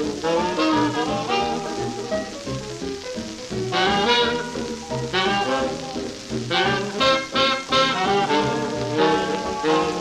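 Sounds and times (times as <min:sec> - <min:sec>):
record surface crackle and hiss: 0:00.0 - 0:10.0
small-group swing jazz: 0:00.0 - 0:10.0.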